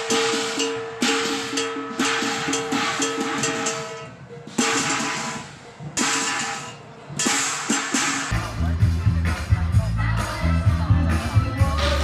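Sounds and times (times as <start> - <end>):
cymbal crash: 0.0 - 8.6
drumbeats: 0.0 - 12.0.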